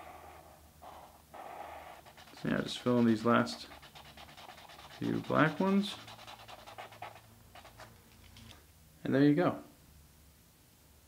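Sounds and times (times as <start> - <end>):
marker scribbling on paper: 0.0 - 7.9.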